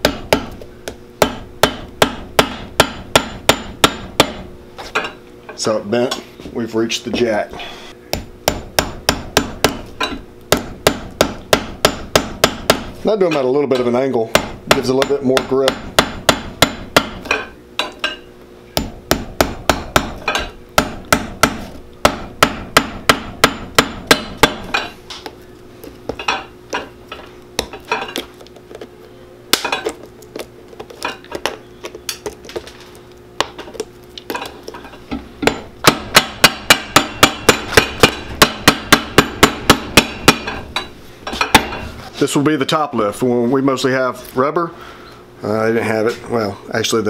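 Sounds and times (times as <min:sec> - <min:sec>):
hammer striking nails: 0:01.2 - 0:04.5, 0:08.2 - 0:13.0, 0:14.3 - 0:18.0, 0:18.8 - 0:24.9, 0:35.4 - 0:40.6.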